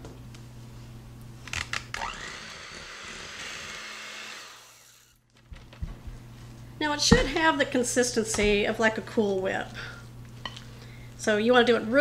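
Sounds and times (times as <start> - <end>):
electric hand mixer whirring: 2.0 - 5.2.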